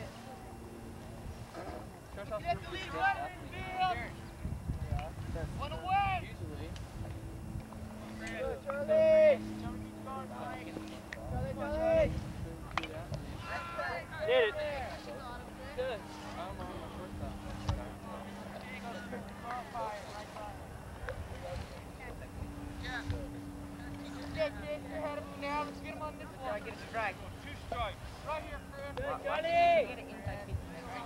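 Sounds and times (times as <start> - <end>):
distant voices of players and spectators: 0.0 - 31.0
steady low rumble: 0.0 - 31.0
people calling out: 8.1 - 21.0.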